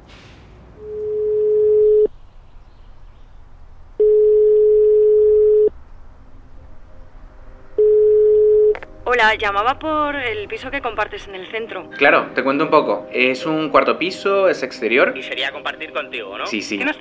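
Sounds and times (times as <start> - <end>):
telephone ringback tone: 0.9 - 2.1, 4.0 - 5.7, 7.8 - 8.8.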